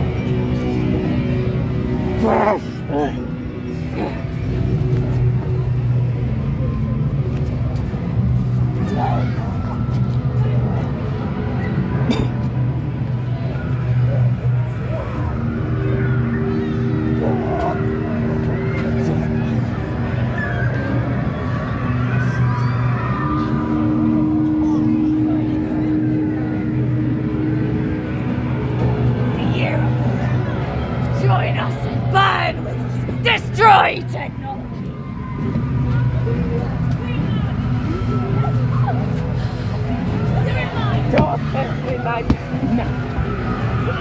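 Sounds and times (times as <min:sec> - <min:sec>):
low droning hum: 0:00.0 - 0:44.0
people's voices: 0:00.0 - 0:44.0
low drone of two held tones: 0:13.3 - 0:31.3.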